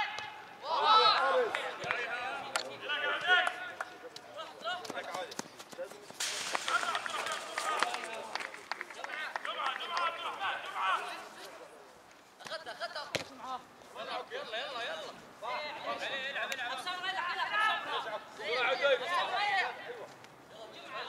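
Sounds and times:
players shouting: 0.0s - 3.7s.

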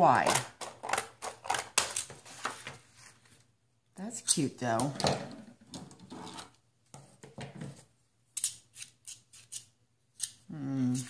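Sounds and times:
paper rustling: 1.8s - 3.4s.

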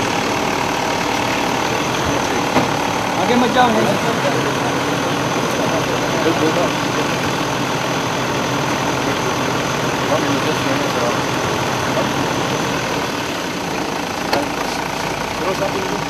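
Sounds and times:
indistinct voices: 0.0s - 16.0s
vehicle engines idling: 0.0s - 16.0s.

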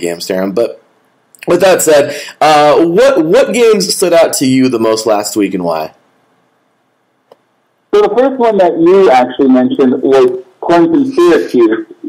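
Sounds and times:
man's voice: 7.9s - 12.0s.

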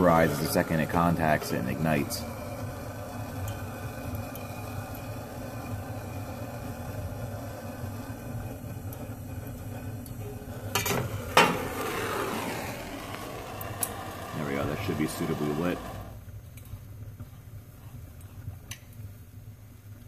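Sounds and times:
gas torch hissing: 0.0s - 16.3s.

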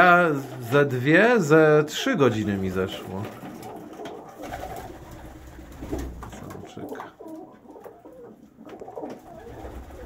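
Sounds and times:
pigeons cooing: 2.9s - 10.0s.

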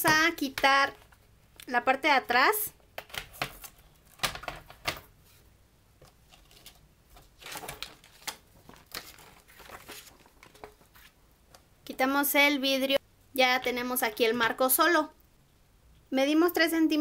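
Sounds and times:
picture frame handling clicks and knocks: 3.0s - 5.1s, 6.0s - 9.2s.

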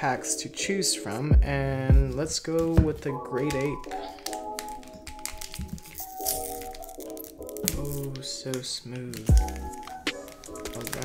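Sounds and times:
background music: 0.0s - 11.0s
foil pack crinkling: 2.3s - 11.0s
foil tearing: 3.3s - 11.0s.

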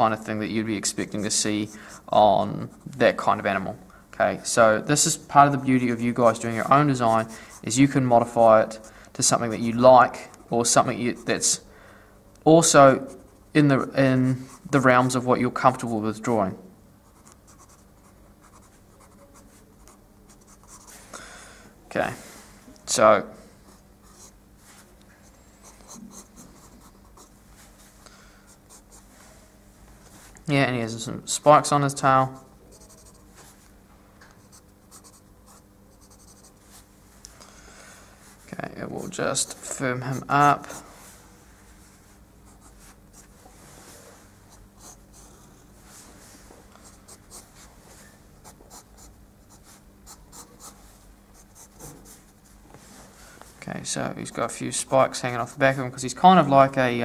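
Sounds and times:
low steady hum: 0.0s - 57.0s
pencil scratching on paper: 0.9s - 2.9s, 5.9s - 7.8s, 17.1s - 21.0s, 25.6s - 27.3s, 32.7s - 33.3s, 34.4s - 36.6s, 39.0s - 41.0s, 44.5s - 45.3s, 48.4s - 50.8s, 51.4s - 52.4s
pencil sketching on paper: 6.0s - 7.8s, 40.0s - 41.0s.

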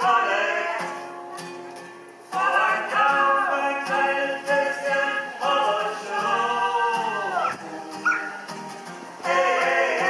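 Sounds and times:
person singing: 2.3s - 7.6s
short high yelp: 7.4s - 8.5s.

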